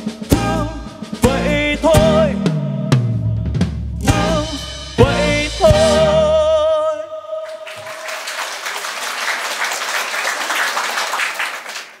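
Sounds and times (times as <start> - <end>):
man singing with vibrato: 0.0 - 8.0
audience applause: 7.5 - 12.0.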